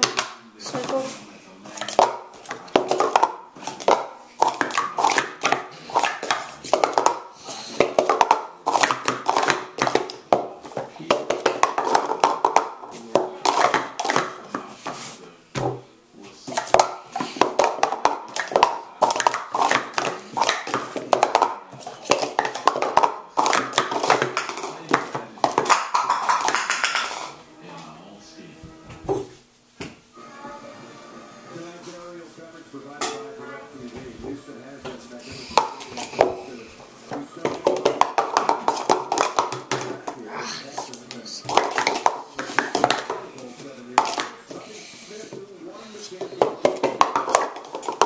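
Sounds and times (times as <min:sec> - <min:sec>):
plastic cups clacking: 0:00.0 - 0:27.4, 0:34.3 - 0:48.0
background voice: 0:30.2 - 0:48.0.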